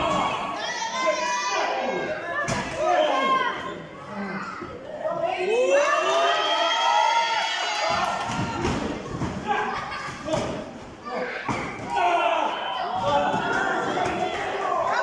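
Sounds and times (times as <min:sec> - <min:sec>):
crowd shouting: 0:00.0 - 0:04.3, 0:11.0 - 0:15.0.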